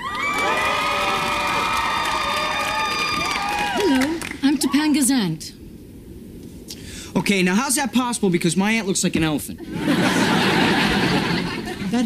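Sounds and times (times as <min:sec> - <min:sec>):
studio audience cheering and whooping: 0:00.0 - 0:04.8.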